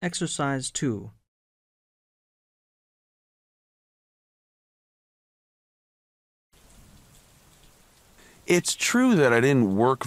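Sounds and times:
faint steady hiss: 6.6s - 10.0s.

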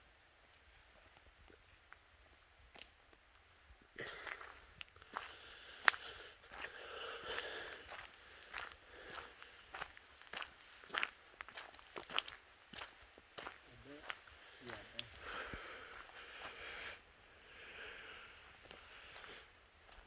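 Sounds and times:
footsteps on gravel: 4.0s - 16.7s, 18.5s - 20.0s.

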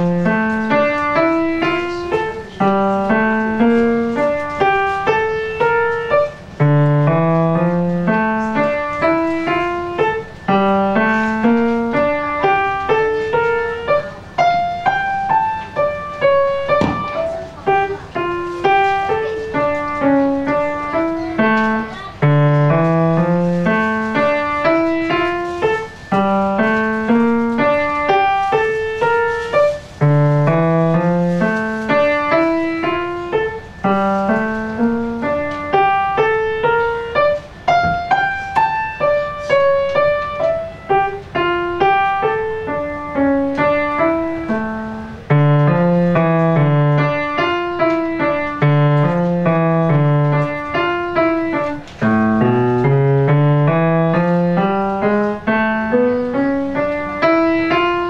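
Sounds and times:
grand piano playing: 0.0s - 58.0s.

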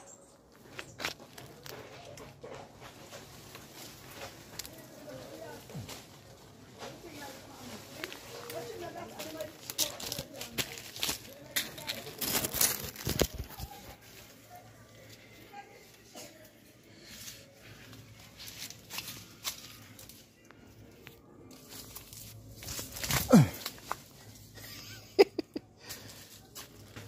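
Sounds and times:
leaves and twigs rustling and crackling: 0.0s - 27.0s
faint voice murmuring: 23.0s - 23.9s.

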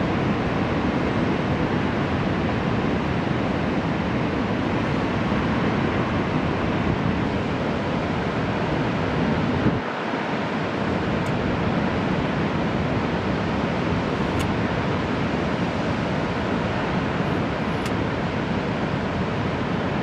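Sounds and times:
wind on microphone: 0.0s - 10.0s
heavy ocean surf: 0.0s - 20.0s.

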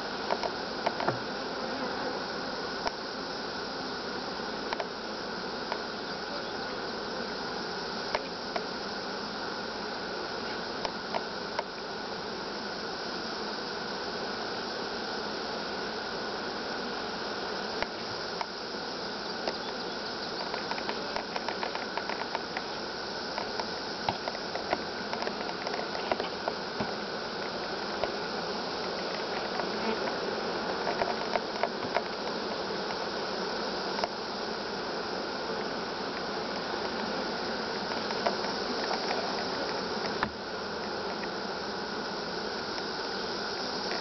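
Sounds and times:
honeybees buzzing: 0.0s - 44.0s.

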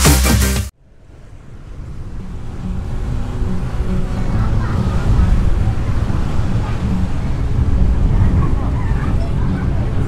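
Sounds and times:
rushing wind: 0.8s - 10.0s
train rumble: 0.9s - 10.0s.

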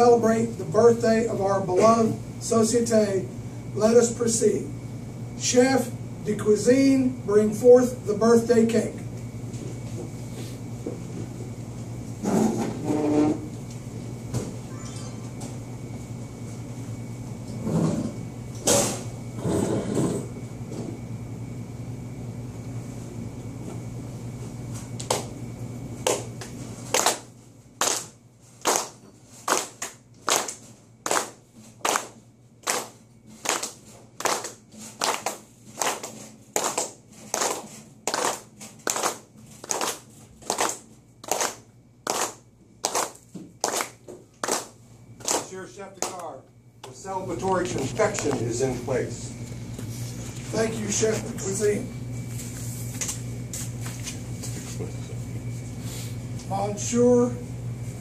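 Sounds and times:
room hum: 0.0s - 58.0s
people clapping in rhythm: 26.0s - 47.0s.

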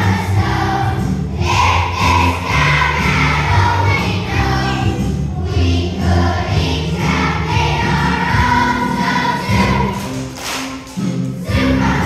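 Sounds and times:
children singing as a choir: 0.0s - 10.4s, 11.4s - 12.0s
backing music: 0.0s - 12.0s.

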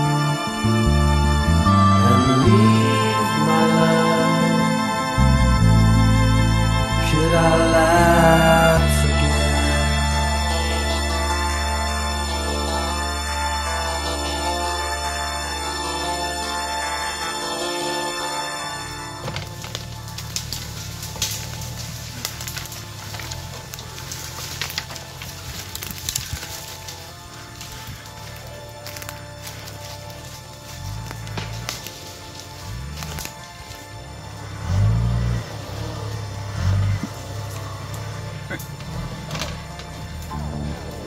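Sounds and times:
off-road engine revving: 0.0s - 41.0s
twigs and branches cracking: 19.0s - 41.0s.

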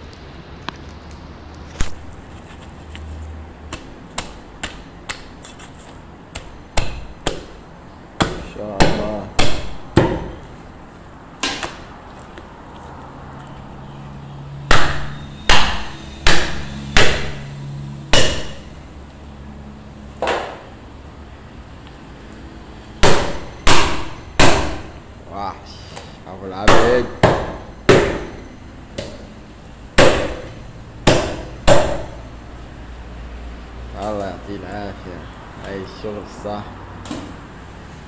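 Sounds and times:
meat cleaver chopping bone: 3.7s - 5.4s, 6.3s - 7.6s, 8.2s - 10.4s, 14.7s - 17.5s, 18.1s - 18.6s, 23.0s - 24.9s, 26.6s - 28.4s, 30.0s - 32.2s.

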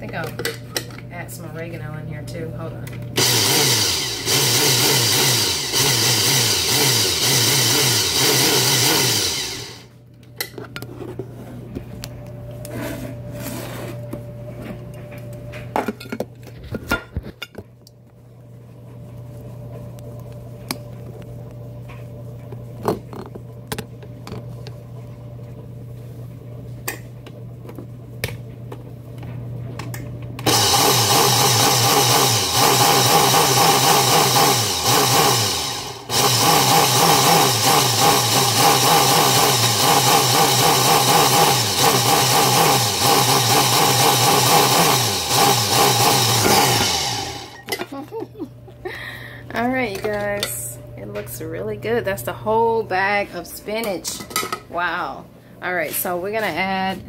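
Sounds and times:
blender motor: 3.2s - 9.9s, 30.4s - 47.7s.

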